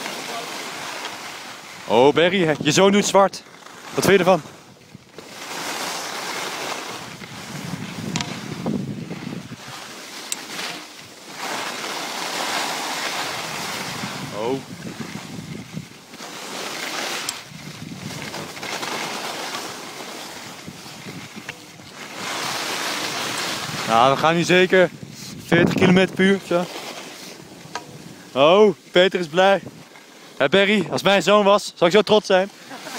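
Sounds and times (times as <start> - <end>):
skis scraping on hard snow: 0.0 - 32.9
wind on microphone: 7.0 - 9.9, 13.3 - 16.0, 17.4 - 18.6, 20.4 - 26.4.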